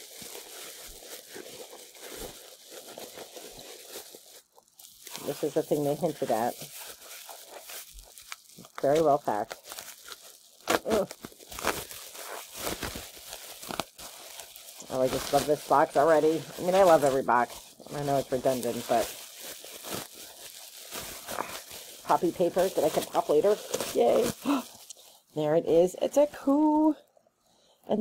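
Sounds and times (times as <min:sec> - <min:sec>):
bubble wrap crinkling: 0:00.0 - 0:27.2
small crackles: 0:00.0 - 0:27.3.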